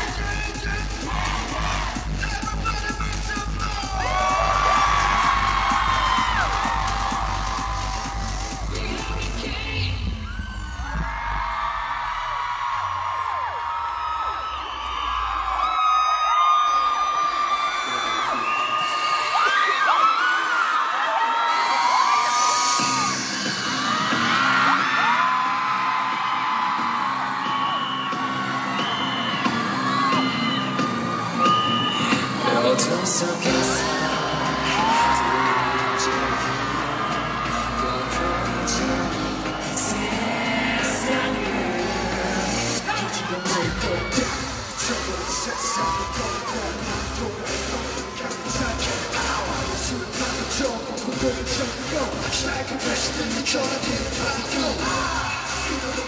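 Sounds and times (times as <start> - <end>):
heavy bass beat: 0.0 - 10.2, 32.2 - 56.0
loud music from speakers: 0.0 - 15.7, 16.6 - 56.0
crowd screaming and cheering: 0.0 - 56.0.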